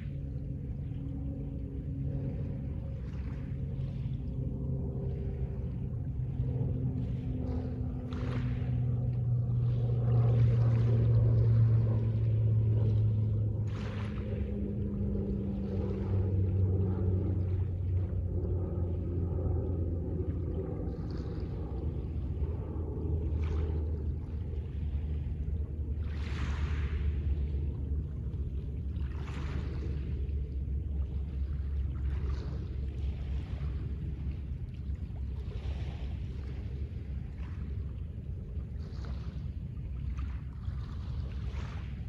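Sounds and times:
ambient synth drone music: 0.0 - 42.0
small waves washing: 0.0 - 42.0.

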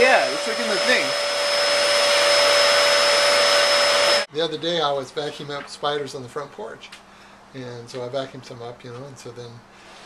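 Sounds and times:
vacuum cleaner running: 0.0 - 4.3.

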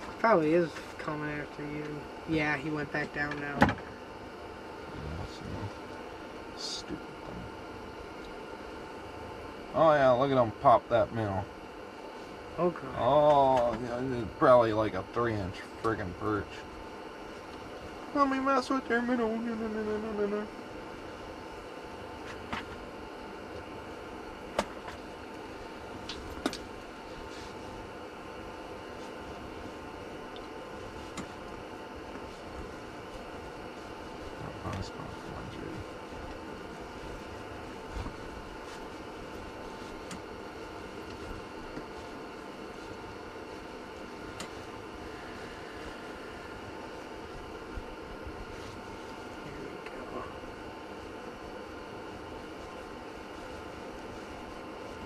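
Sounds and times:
steady mechanical hum: 0.0 - 55.0.

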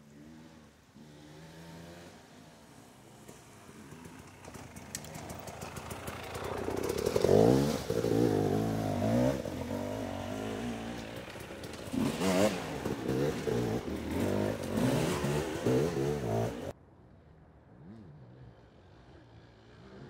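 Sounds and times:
motorcycle engine revving: 0.0 - 16.7.

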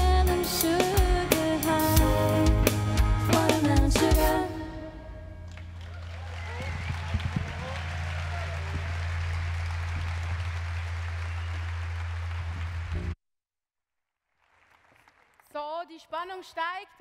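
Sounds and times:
crowd applauding and cheering: 5.4 - 13.2, 14.4 - 15.4.

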